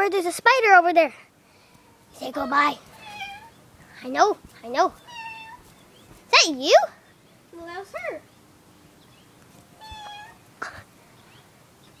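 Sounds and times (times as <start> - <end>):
cat meowing: 2.9 - 3.6, 5.0 - 5.7, 9.8 - 10.5.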